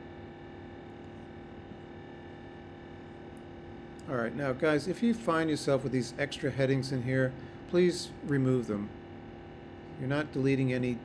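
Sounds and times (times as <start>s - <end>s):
steady electrical hum: 0.0s - 11.0s.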